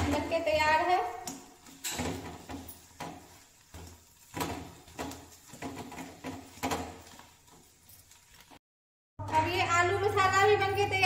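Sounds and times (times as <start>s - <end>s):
metal spatula scraping a pan: 0.0s - 8.6s.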